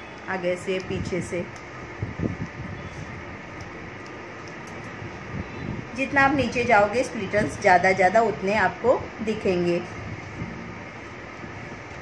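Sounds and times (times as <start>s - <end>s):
fan hum: 0.0s - 12.0s.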